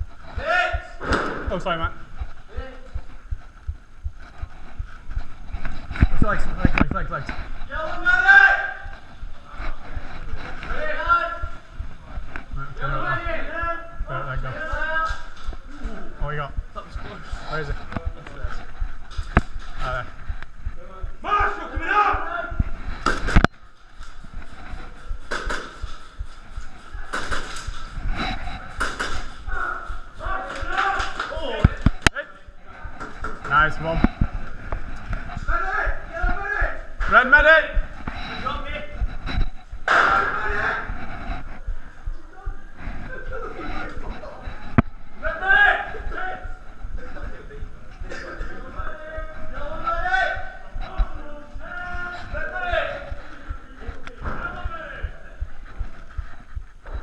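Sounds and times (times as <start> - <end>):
men calling out: 7.7 - 9.0, 21.1 - 22.7, 29.2 - 32.4, 45.2 - 55.4.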